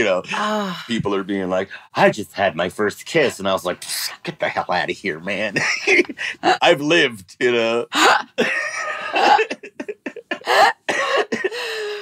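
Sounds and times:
people laughing: 8.4 - 11.6
people coughing: 8.6 - 9.6.

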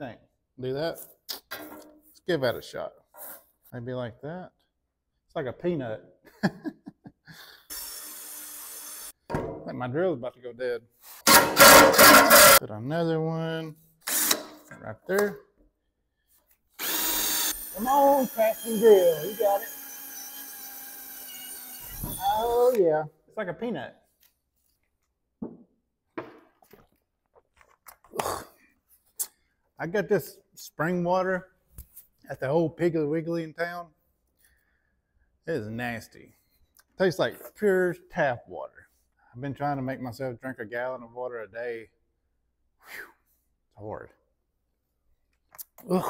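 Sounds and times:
cordless drill driving into plastic: 14.1 - 14.6.

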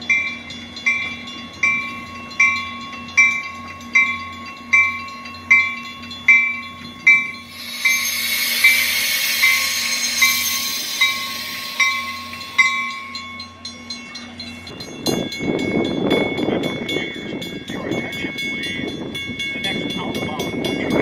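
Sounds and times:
passing train hiss and rumble: 0.0 - 21.0
warning bell ringing: 0.0 - 21.0.

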